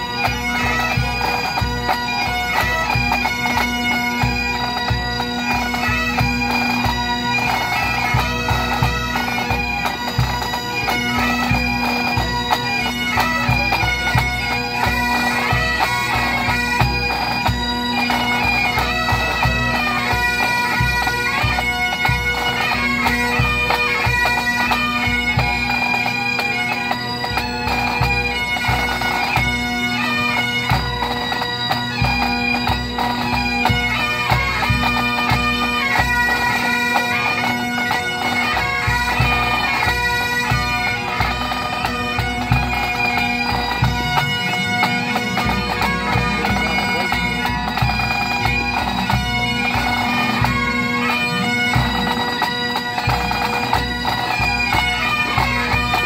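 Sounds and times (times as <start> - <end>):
bagpipes playing a march: 0.0 - 56.0.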